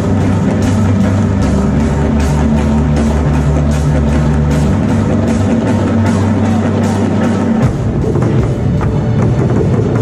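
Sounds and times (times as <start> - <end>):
drum kit steady beat: 0.0 - 10.0.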